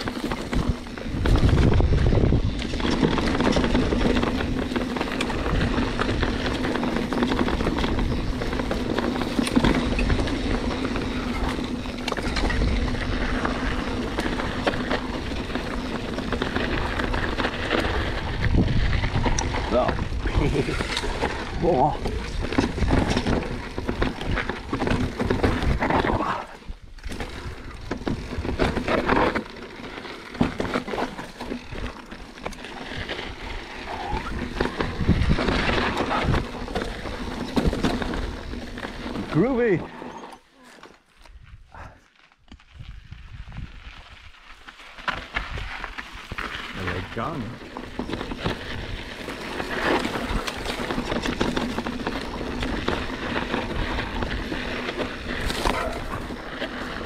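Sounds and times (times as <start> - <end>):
wind on camera: 0.0 - 28.8, 32.8 - 39.4, 41.3 - 44.4
bike tyres and frame over rocky trail: 0.0 - 57.0.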